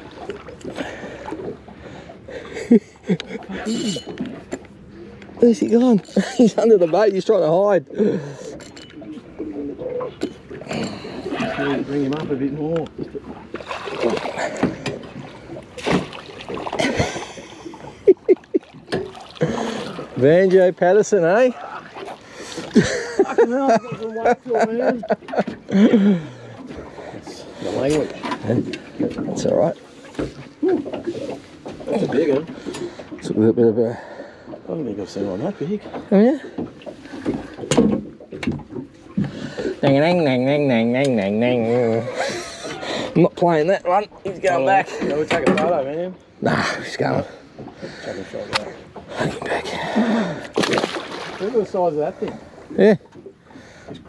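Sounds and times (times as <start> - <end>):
water splashing beside boat hull: 0.0 - 54.0
gear clattering on boat deck: 24.7 - 25.8, 27.7 - 33.5, 35.8 - 40.2, 44.9 - 46.0.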